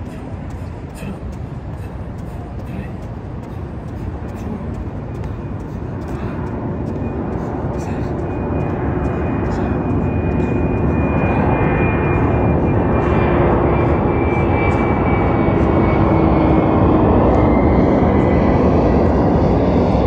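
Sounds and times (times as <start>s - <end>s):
airplane engine roar: 0.0s - 20.0s.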